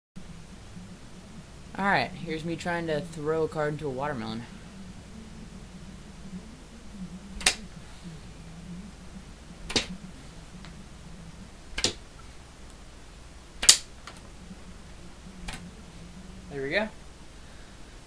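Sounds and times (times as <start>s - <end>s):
playing cards hitting watermelon: 9.7s - 10.0s, 11.8s - 12.0s, 13.6s - 14.2s.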